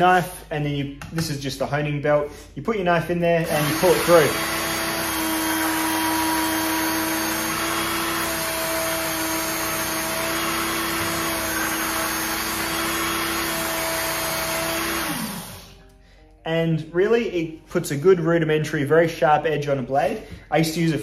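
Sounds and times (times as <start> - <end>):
knife sharpener motor whine: 3.5 - 15.7.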